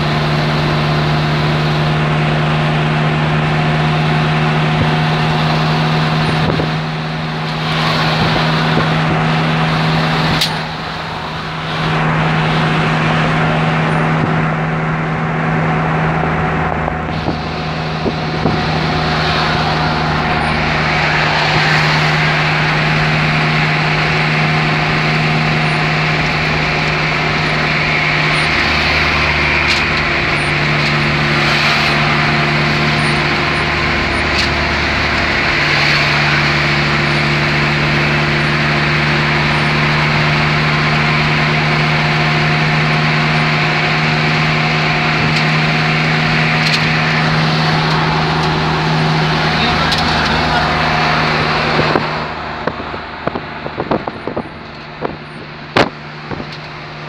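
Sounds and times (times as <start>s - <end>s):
car engine humming: 0.0s - 57.0s
tyre and wind noise: 4.6s - 57.0s.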